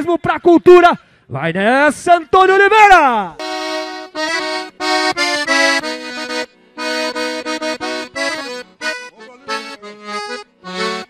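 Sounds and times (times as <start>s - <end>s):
accordion playing chords: 3.3s - 11.0s.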